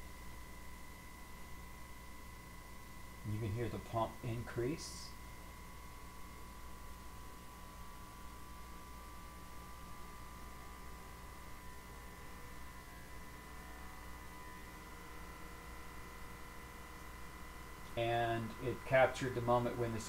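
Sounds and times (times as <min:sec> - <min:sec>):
low hum: 0:00.0 - 0:20.0.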